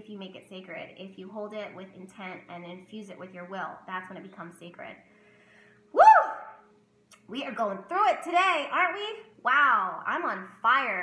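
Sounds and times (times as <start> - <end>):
woman exclaiming woo: 5.9 - 6.6.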